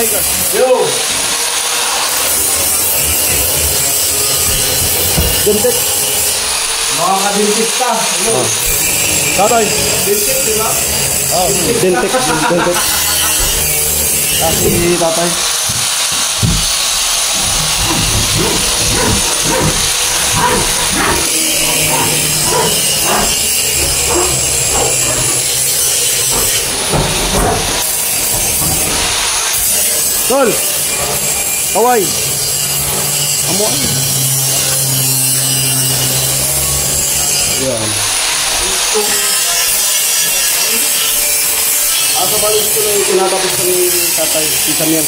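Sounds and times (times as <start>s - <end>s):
hand saw cutting plywood: 0.0s - 45.0s
power tool running: 0.0s - 45.0s.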